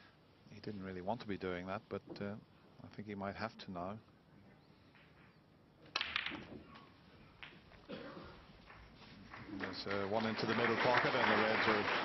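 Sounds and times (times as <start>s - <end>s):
snooker balls clicking: 4.9s - 7.9s.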